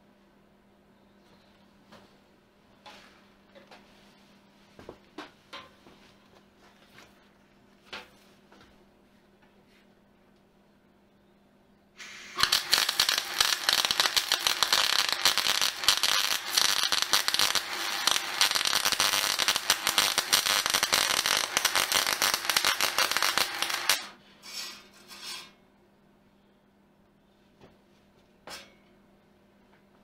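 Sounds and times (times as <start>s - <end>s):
electric arc welding crackle: 12.0s - 24.2s.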